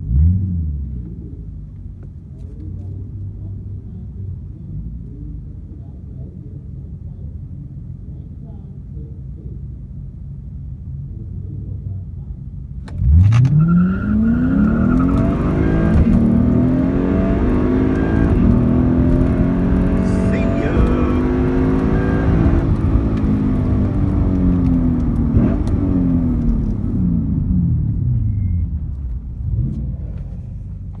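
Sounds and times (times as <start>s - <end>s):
car engine idling: 0.8s - 13.2s, 14.2s - 31.0s
car engine accelerating hard: 12.8s - 31.0s.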